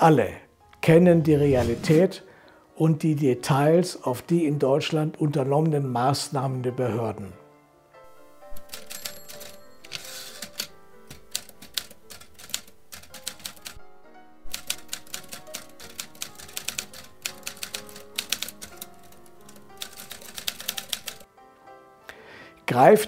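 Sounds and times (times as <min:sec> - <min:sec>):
soft background music: 0:00.0 - 0:23.0
typewriter key clacks: 0:08.6 - 0:13.8.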